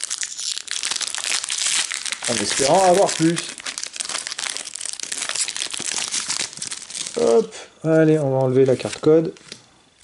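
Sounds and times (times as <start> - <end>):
plastic foil wrapper crinkling: 0.0 - 7.5, 8.4 - 10.0.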